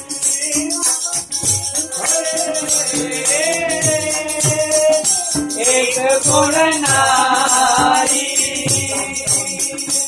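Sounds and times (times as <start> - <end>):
harmonium chords: 0.0 - 10.0
tabla strokes: 0.0 - 10.0.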